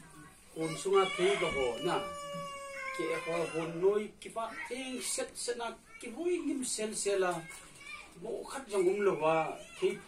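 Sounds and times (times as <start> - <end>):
high wailing cry: 0.6 - 4.0
men talking: 0.6 - 7.5, 8.2 - 10.0.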